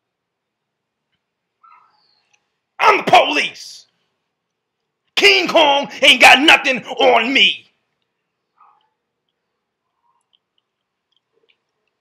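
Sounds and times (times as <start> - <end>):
man speaking loudly: 2.8 - 3.9, 5.2 - 7.7.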